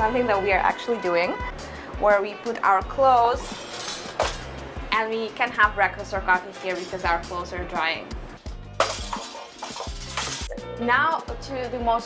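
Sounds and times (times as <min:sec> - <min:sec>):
background music: 0:00.0 - 0:12.0
metal drying rack folding: 0:03.4 - 0:04.6, 0:06.0 - 0:07.8, 0:08.8 - 0:10.5.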